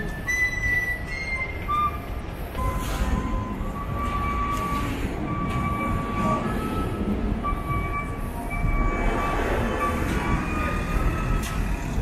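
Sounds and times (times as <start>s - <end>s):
rumbling street traffic: 0.0s - 12.0s.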